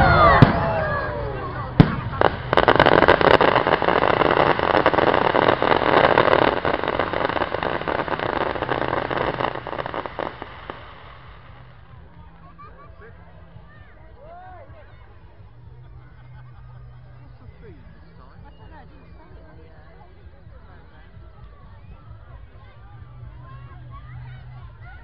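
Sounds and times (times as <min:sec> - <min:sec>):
firework whistling: 0:00.0 - 0:12.1
firework crackling: 0:00.2 - 0:12.5
firework shell bursts: 0:02.2 - 0:11.7.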